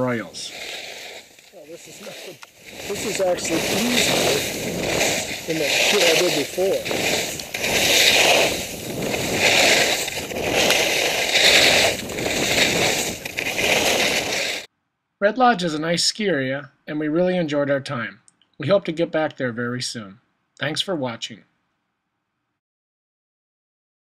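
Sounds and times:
skis scraping on snow: 0.0s - 14.7s
wind rushing over microphone: 1.3s - 14.7s.

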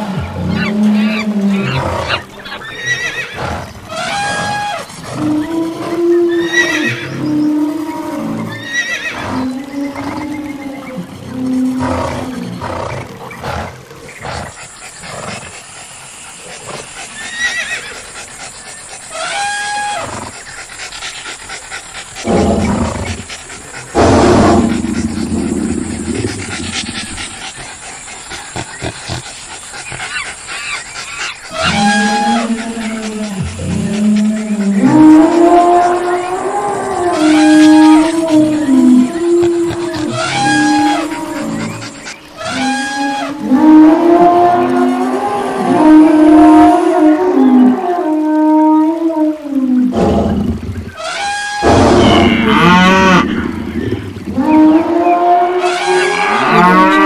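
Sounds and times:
loud pitched animal calls: 0.0s - 10.2s, 11.8s - 48.2s, 51.0s - 57.0s
horse whinnies: 8.5s - 9.4s
rough loud roar: 22.2s - 27.6s, 31.5s - 48.0s.

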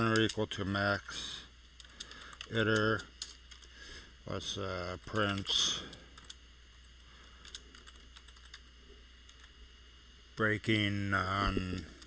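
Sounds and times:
typing on computer keyboard: 1.8s - 3.7s, 7.4s - 8.7s.

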